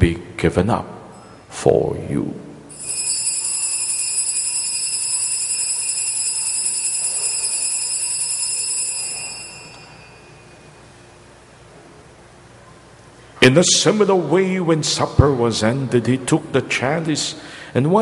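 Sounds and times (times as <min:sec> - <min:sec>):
bells ringing: 0:02.7 - 0:11.5.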